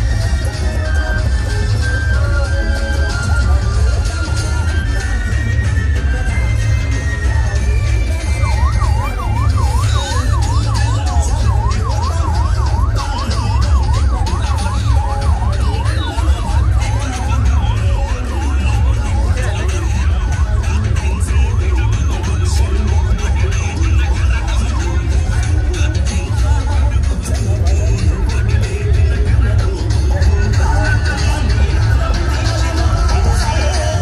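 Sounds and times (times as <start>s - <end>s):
loud music with heavy bass: 0.0s - 34.0s
vehicle siren yelping: 0.0s - 34.0s.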